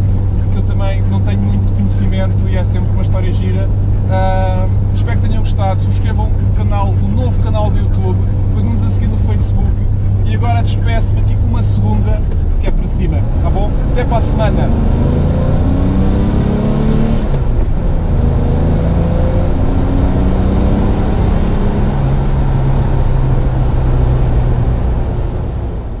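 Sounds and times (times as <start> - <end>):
car engine accelerating: 0.0 - 26.0.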